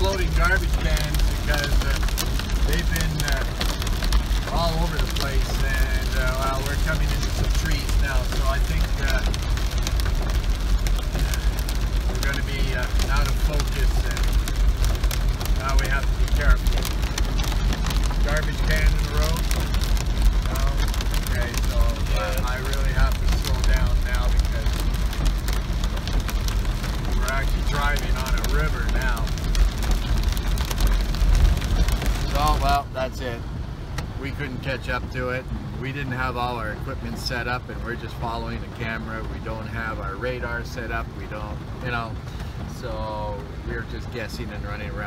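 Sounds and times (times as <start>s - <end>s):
engine and tyres rumbling on wet road: 0.0s - 45.0s
rain hitting car roof: 0.0s - 45.0s.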